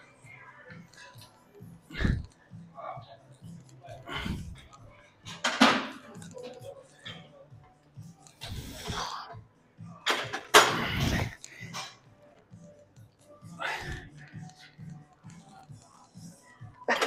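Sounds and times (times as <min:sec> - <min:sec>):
background music: 0:00.0 - 0:17.0
heavy breathing: 0:01.8 - 0:02.6, 0:03.9 - 0:04.9, 0:08.4 - 0:09.4, 0:10.6 - 0:12.0, 0:13.4 - 0:14.9.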